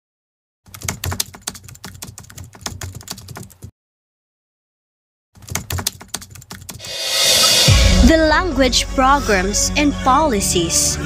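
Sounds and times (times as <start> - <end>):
keyboard key clicks: 5.4 - 6.8.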